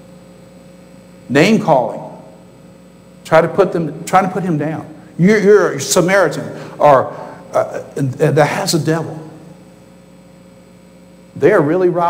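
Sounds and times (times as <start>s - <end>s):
low electrical hum: 0.0s - 12.0s
man talking: 1.3s - 2.3s, 3.2s - 9.5s, 11.4s - 12.0s.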